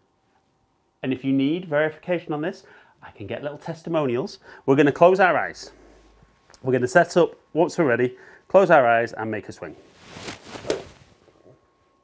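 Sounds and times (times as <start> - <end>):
golf club swishing through air: 9.8 - 11.2.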